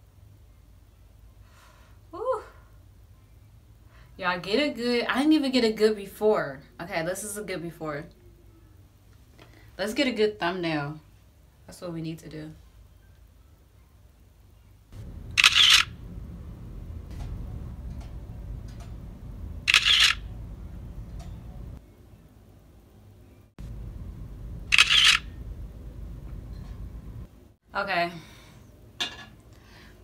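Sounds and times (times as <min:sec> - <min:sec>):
low steady hum: 0:00.0 - 0:30.0
camera shutter clicks: 0:15.4 - 0:15.9, 0:19.7 - 0:20.3, 0:24.7 - 0:25.3.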